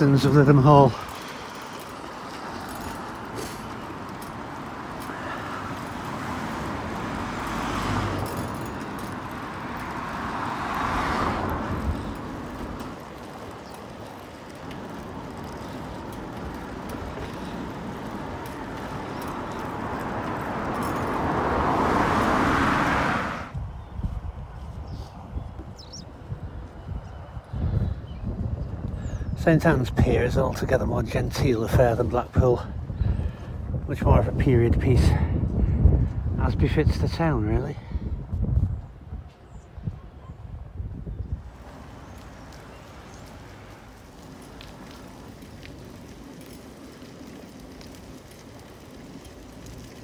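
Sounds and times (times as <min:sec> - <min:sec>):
cars passing: 0:00.0 - 0:27.5, 0:40.4 - 0:50.0
bicycle riding noise: 0:00.0 - 0:50.0.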